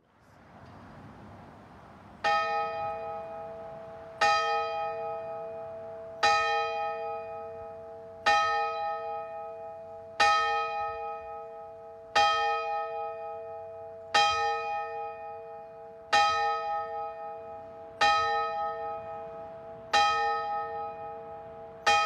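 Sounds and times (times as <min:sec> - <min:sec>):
church bell tolling: 0:02.2 - 0:22.0.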